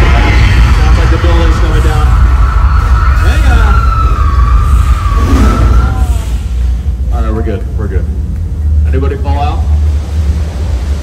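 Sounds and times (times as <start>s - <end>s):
siren wailing: 0.0s - 6.7s
heavy low rumble: 0.0s - 11.0s.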